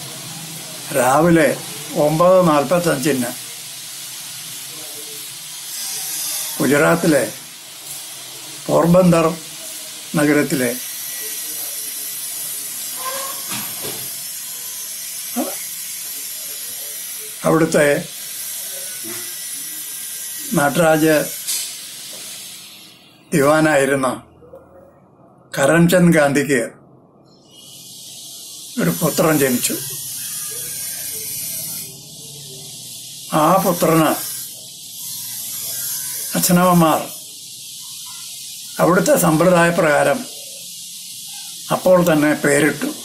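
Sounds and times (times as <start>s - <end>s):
high-pitched background hiss: 0.0s - 24.2s, 25.6s - 43.0s.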